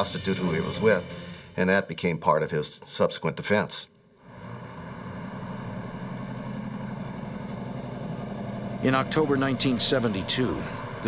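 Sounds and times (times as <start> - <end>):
traffic engines humming: 4.2 - 11.0.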